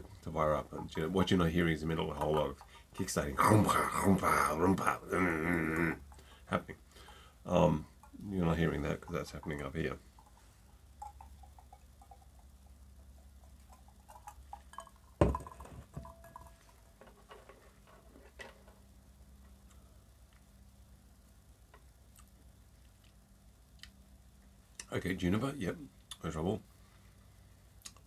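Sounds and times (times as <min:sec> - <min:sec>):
small ticks and clicks: 0:09.1 - 0:15.2
glass set down on hard surface: 0:14.7 - 0:17.5.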